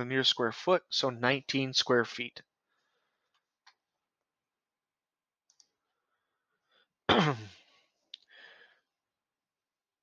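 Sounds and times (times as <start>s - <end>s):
faint clicks: 5.4s - 5.8s
man coughing: 7.1s - 7.7s.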